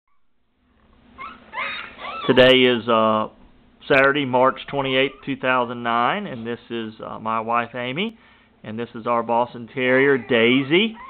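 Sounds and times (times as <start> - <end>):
puppies whimpering: 1.1 - 2.7, 4.7 - 5.6, 9.8 - 11.0.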